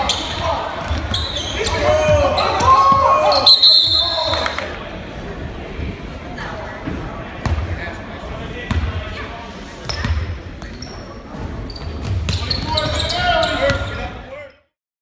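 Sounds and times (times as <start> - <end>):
sneakers squeaking: 0.0 - 4.6, 9.8 - 14.2
players and crowd voices: 0.0 - 14.8.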